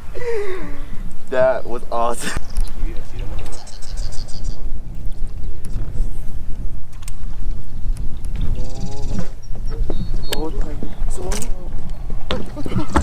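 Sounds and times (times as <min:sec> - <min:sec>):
wind buffeting microphone: 0:00.0 - 0:13.0
sharp clicks: 0:06.9 - 0:08.5.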